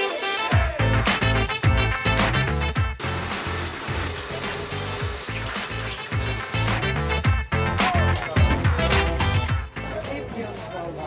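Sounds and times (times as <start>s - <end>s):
upbeat music with bass beat: 0.0s - 11.0s.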